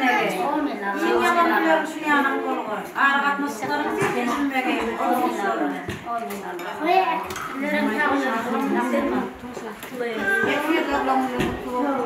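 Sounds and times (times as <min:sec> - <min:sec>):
people talking: 0:00.0 - 0:12.0
dishes and cutlery clinking: 0:03.6 - 0:12.0.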